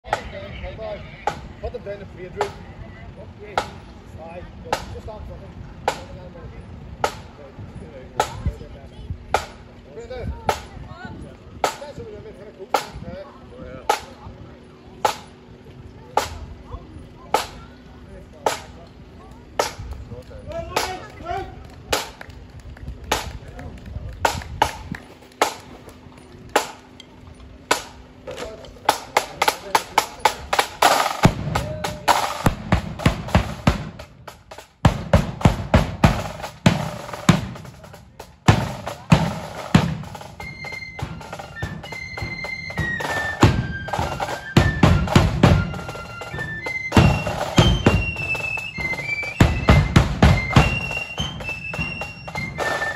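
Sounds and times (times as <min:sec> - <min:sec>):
side drums: 0:04.6 - 0:05.2, 0:05.8 - 0:06.3, 0:08.1 - 0:08.6, 0:09.3 - 0:09.7, 0:11.6 - 0:13.0, 0:15.0 - 0:15.5, 0:16.1 - 0:18.9, 0:19.5 - 0:21.2, 0:27.6 - 0:52.9
bass drum: 0:31.2 - 0:40.2, 0:42.8 - 0:52.6
flutes playing high melody: 0:40.1 - 0:52.9.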